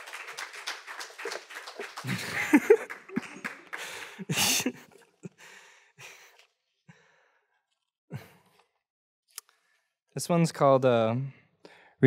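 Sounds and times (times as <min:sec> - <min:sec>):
breathy sigh: 0:03.7 - 0:04.3.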